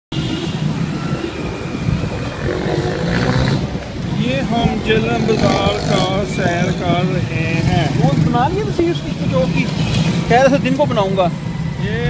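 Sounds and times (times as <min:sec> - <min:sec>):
street traffic rumble: 0:00.1 - 0:12.0.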